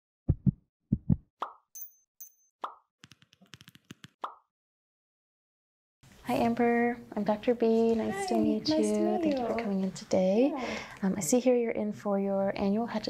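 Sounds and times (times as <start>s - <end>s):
deep double thumps: 0.3s - 1.2s.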